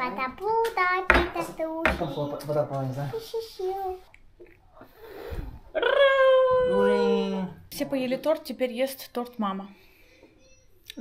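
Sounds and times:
child squealing: 5.8 - 7.3.

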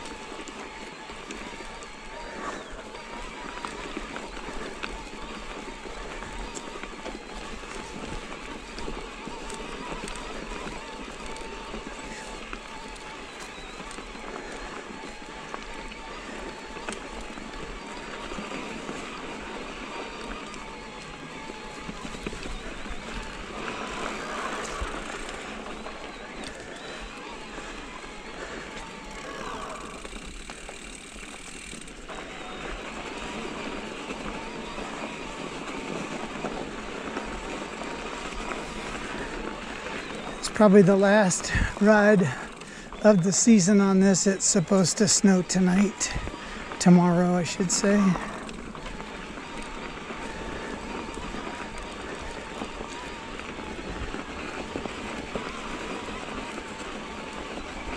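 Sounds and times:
bike rattles and clicks: 0.0 - 57.9
bike tyres on dirt: 0.0 - 57.9.

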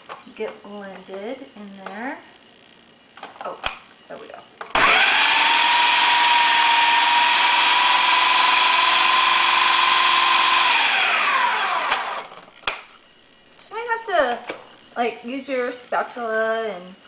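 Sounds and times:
food processor motor whining: 4.7 - 12.8.

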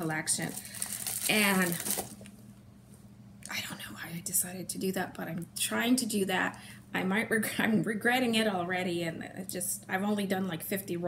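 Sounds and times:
woman talking: 0.0 - 2.0, 3.5 - 11.0
faint steady low hum: 0.0 - 11.0.

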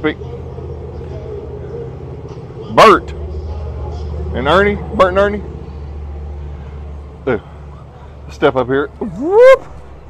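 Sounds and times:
traffic hum: 0.0 - 10.0.

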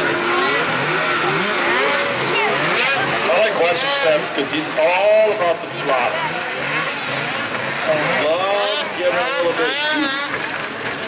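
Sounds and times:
snowmobile engines revving: 0.0 - 11.0.

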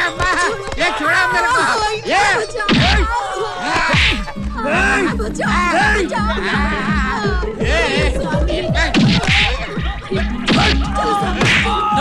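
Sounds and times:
comic film score music: 0.0 - 12.0.

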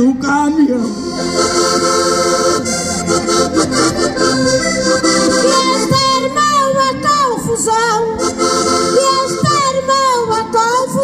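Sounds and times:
button accordions playing: 0.8 - 10.8
woman singing into microphone: 5.5 - 8.2, 9.0 - 11.0.

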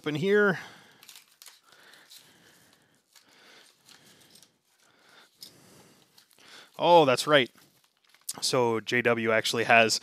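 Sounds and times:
paper envelope torn open: 1.0 - 1.7.

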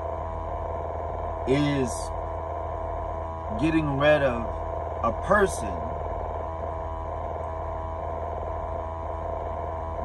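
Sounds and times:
faint steady tone: 0.0 - 10.0
truck cab machine hum: 0.0 - 10.0.

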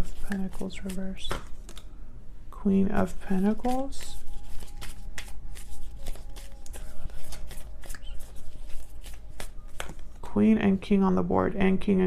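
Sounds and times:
cards being shuffled: 0.0 - 1.9, 3.0 - 10.3.

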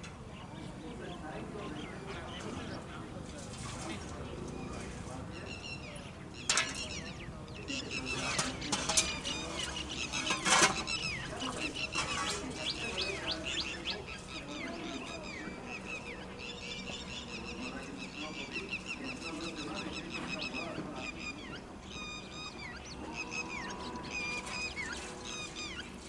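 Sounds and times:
birds chirping and whistling: 4.3 - 26.0.

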